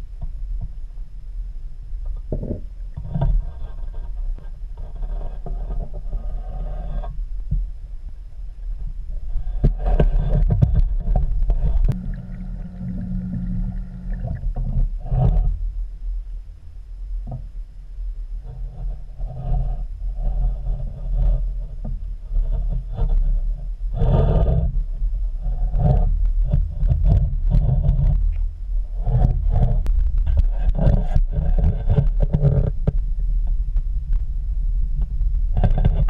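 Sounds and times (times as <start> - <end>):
muffled underwater rumble: 0.0 - 36.0
knocks and scrapes: 2.0 - 7.8, 8.7 - 15.8, 18.4 - 34.3, 35.0 - 36.0.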